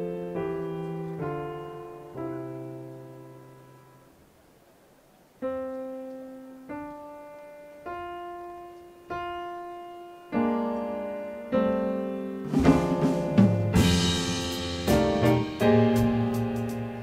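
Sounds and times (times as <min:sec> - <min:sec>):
slow piano notes and chords: 0:00.0 - 0:04.4, 0:05.3 - 0:17.0.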